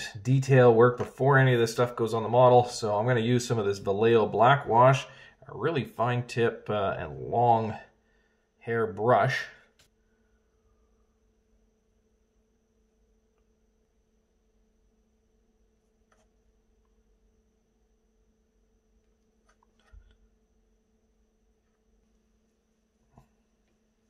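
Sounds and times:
faint steady hum: 0.0s - 24.0s.

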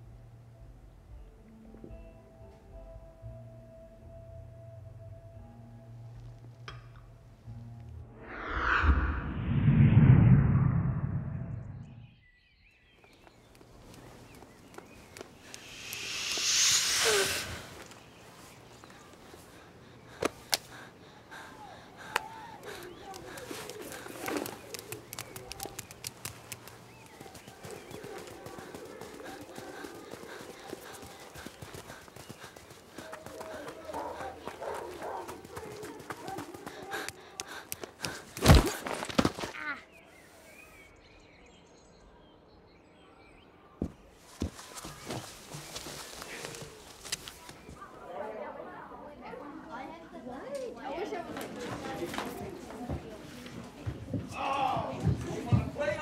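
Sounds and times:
deep rumble: 7.9s - 12.2s
whoosh sound effect: 8.1s - 12.0s, 15.6s - 17.9s
children's footsteps running: 22.2s - 39.6s.

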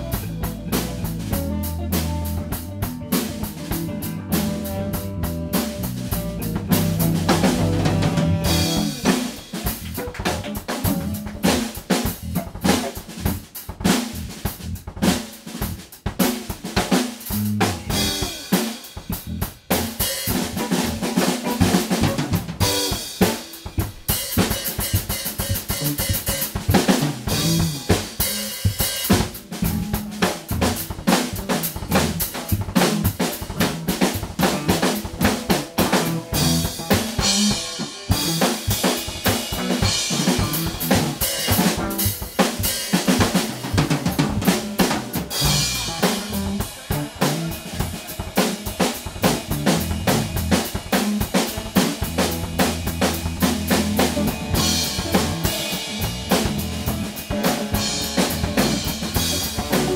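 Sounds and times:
electric guitar: 0.0s - 13.4s, 16.6s - 59.9s
drum kit beat: 0.0s - 59.9s
electric bass: 0.0s - 59.9s.

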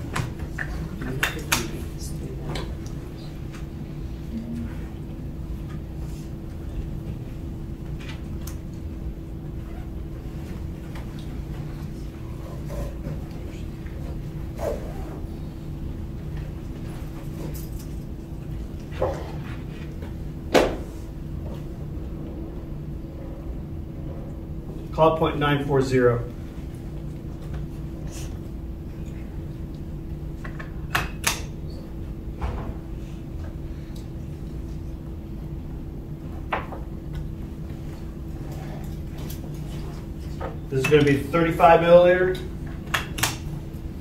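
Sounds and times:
low steady hum: 0.0s - 44.0s.

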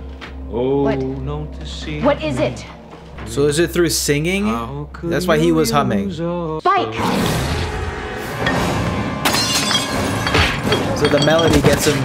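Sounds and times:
tense dramatic score: 0.4s - 11.2s
ringing debris: 8.5s - 12.0s.

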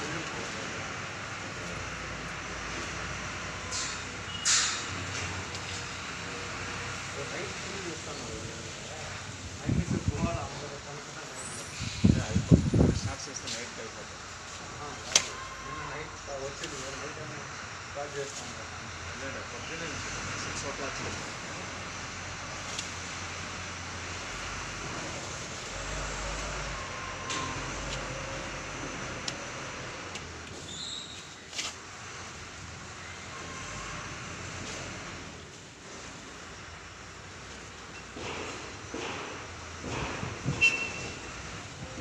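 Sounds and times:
outdoor background noise: 0.0s - 42.0s.

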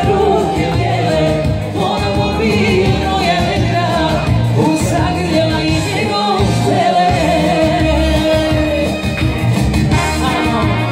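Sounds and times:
band music with singing: 0.0s - 10.9s
steady bass beat: 0.0s - 10.9s.

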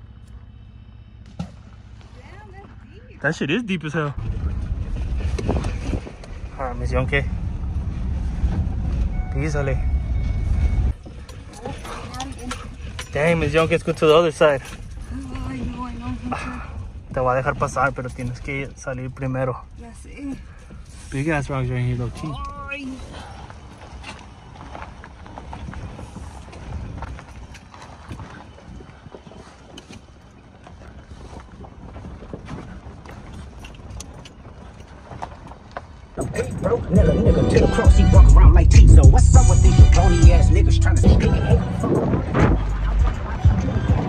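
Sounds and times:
truck cabin rumble: 0.0s - 27.6s, 30.5s - 44.0s
tyres crunching over rocks: 21.8s - 36.4s.

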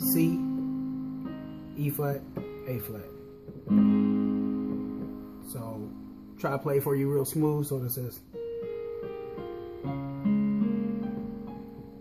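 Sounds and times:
digital keyboard chord: 0.0s - 12.0s.

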